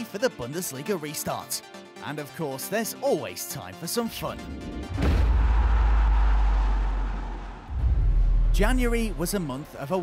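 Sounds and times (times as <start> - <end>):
deep booming hit with rumble: 4.9 - 9.1.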